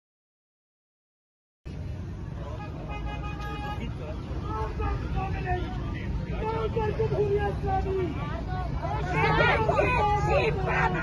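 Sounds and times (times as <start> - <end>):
street noise with low rumble: 1.7 - 11.0
car horn: 2.4 - 4.7.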